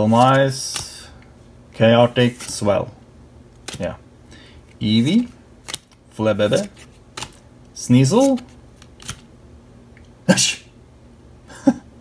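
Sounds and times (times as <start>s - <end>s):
man snorting with laughter: 11.5s - 11.9s.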